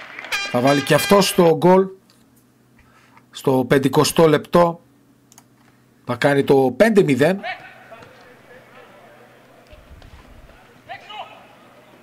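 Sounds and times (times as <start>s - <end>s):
distant players calling: 0.3s - 1.6s, 7.4s - 12.0s.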